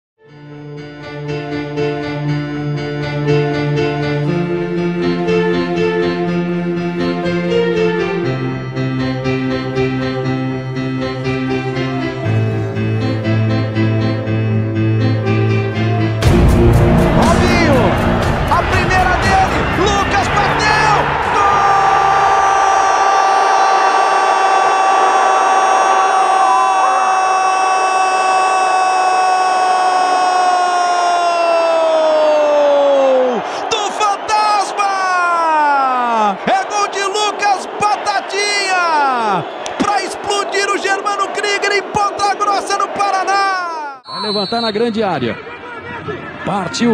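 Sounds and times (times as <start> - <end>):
stadium crowd cheering: 16.2 - 46.9
commentator shouting goal: 17.0 - 23.3, 27.0 - 44.3.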